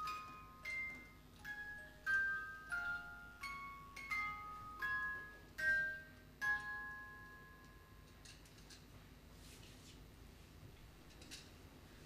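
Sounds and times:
glockenspiel melody: 0:00.0 - 0:08.2.

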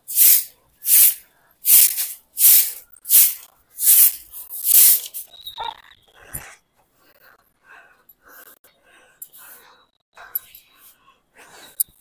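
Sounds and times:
stiff broom sweeping concrete: 0:00.1 - 0:05.2.

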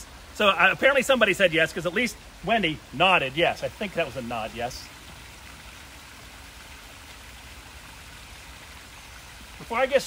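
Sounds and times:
small waterfall splashing: 0:00.0 - 0:10.0.

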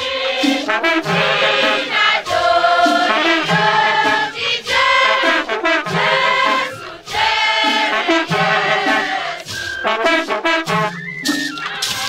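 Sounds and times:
mixed choir singing: 0:00.0 - 0:10.9, 0:11.5 - 0:12.0.

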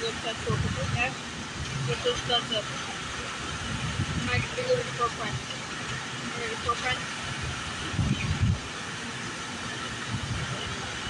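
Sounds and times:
city background noise: 0:00.0 - 0:11.0.

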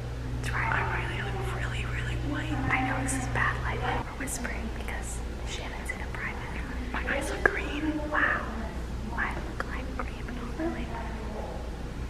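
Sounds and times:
women whispering: 0:00.4 - 0:11.8.

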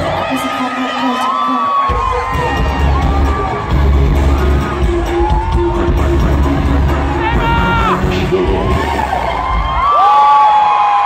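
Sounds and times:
fans screaming: 0:00.0 - 0:06.2, 0:06.8 - 0:11.0
crowd cheering: 0:00.0 - 0:11.0.

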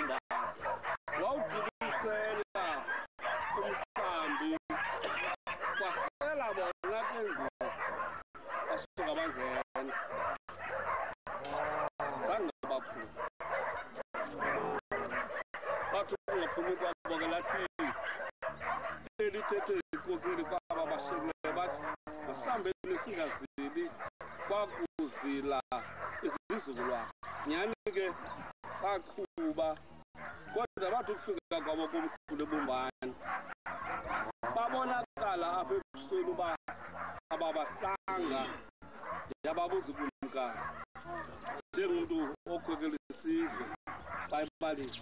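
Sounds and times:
man talking: 0:00.0 - 0:00.3, 0:01.1 - 0:08.0, 0:08.6 - 0:10.3, 0:11.4 - 0:13.3, 0:14.2 - 0:18.0, 0:19.2 - 0:28.2, 0:30.5 - 0:33.2, 0:34.0 - 0:36.6, 0:37.3 - 0:38.7, 0:39.3 - 0:45.0
man speaking: 0:01.1 - 0:07.8, 0:11.4 - 0:13.2, 0:15.9 - 0:18.0, 0:19.2 - 0:28.2, 0:34.2 - 0:36.6, 0:37.3 - 0:38.6.

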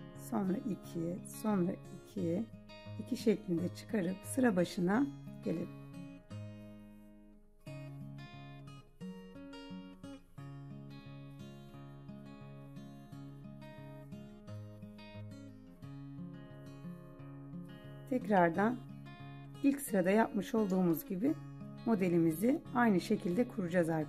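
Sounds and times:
plucked acoustic guitar music: 0:00.0 - 0:24.0.

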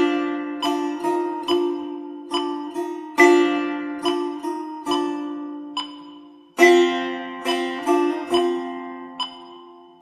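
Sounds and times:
setar plucked notes: 0:00.0 - 0:10.0.

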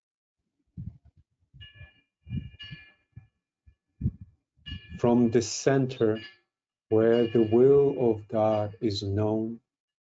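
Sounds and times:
thin steady ringing tone: 0:01.6 - 0:03.2, 0:04.0 - 0:09.6.

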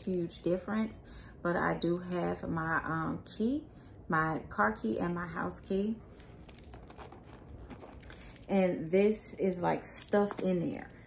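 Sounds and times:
keys jingling on a keychain: 0:06.1 - 0:08.9, 0:09.8 - 0:11.0.

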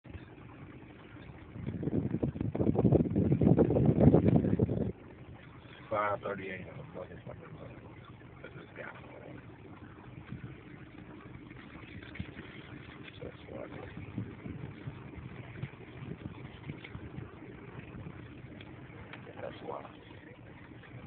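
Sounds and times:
steady low rumble: 0:00.0 - 0:21.0
faint clicks: 0:18.5 - 0:19.4.

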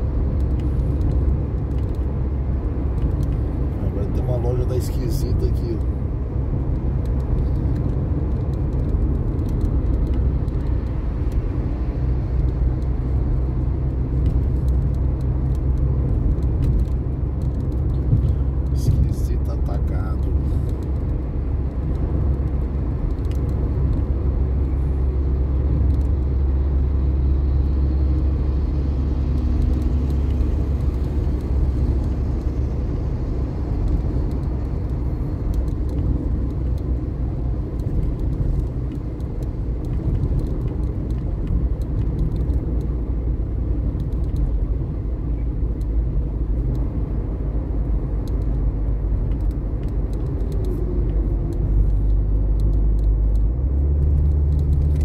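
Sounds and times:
car engine and tyres rumbling: 0:00.0 - 0:55.0.

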